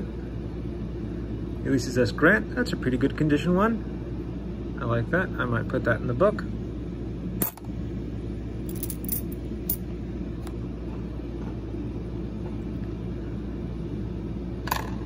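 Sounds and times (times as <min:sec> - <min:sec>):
steady low hum: 0:00.0 - 0:15.0
coins clicking and clinking: 0:07.4 - 0:07.6, 0:08.7 - 0:09.8.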